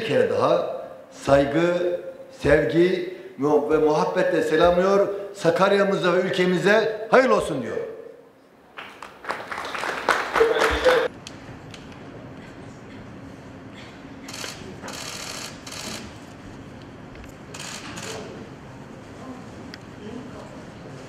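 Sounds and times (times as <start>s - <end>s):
applause: 8.8s - 11.1s
rapid camera shutter clicks: 14.3s - 16.2s, 17.5s - 18.3s.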